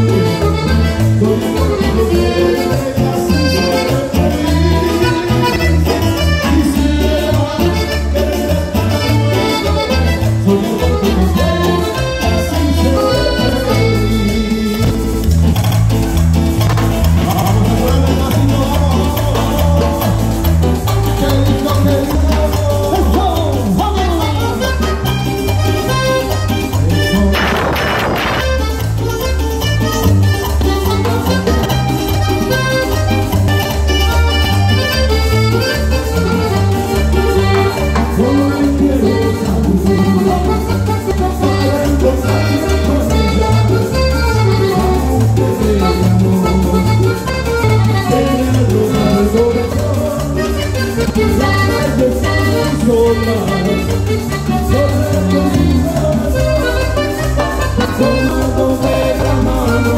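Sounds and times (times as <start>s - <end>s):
live dance band playing: 0.0s - 59.9s
repeating bass line: 0.0s - 59.9s.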